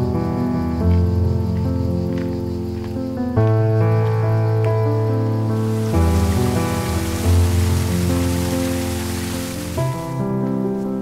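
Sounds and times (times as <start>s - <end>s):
background music: 0.0s - 11.0s
water rushing in a channel: 5.6s - 10.3s.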